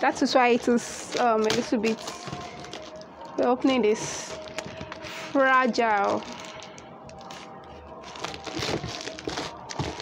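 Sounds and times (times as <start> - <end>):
packing tape and cardboard rustling: 0.5 - 10.0.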